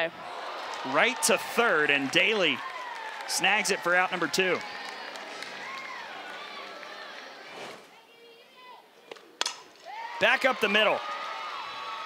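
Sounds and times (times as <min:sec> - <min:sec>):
ballpark crowd: 0:00.0 - 0:12.0
sharp crack: 0:09.1 - 0:09.9.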